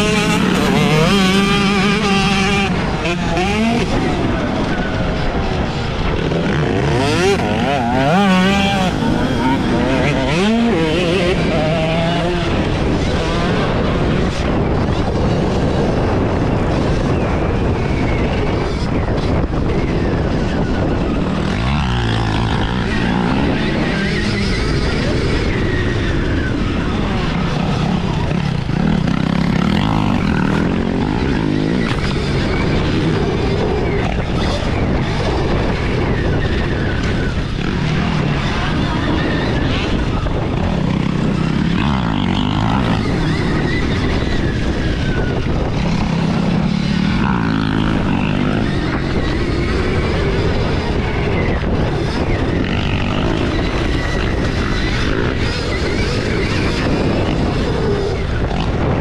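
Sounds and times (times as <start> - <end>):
wind noise on microphone: 0.0 - 59.0.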